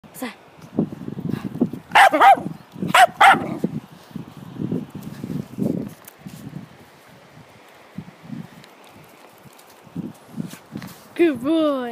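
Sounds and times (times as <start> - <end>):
dog barking: 1.9 - 3.6.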